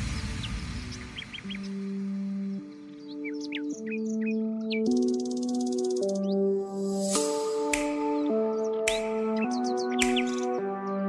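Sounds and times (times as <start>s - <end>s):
birds chirping: 0.0s - 11.0s
music of slow held chords: 0.0s - 11.0s.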